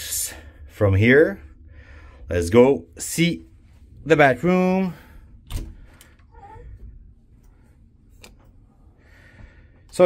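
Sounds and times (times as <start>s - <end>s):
door clicking open: 5.4s - 6.2s.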